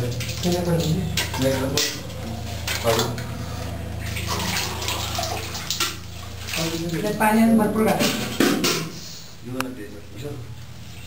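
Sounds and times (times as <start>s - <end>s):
water splashing and trickling: 0.0s - 9.0s
steady low hum: 0.0s - 11.0s.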